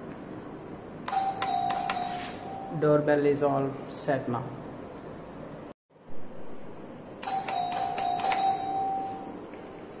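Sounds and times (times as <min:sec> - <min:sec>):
doorbell button press: 0:01.1 - 0:02.8, 0:07.2 - 0:09.6
doorbell chime tune: 0:01.1 - 0:03.2, 0:07.2 - 0:10.0.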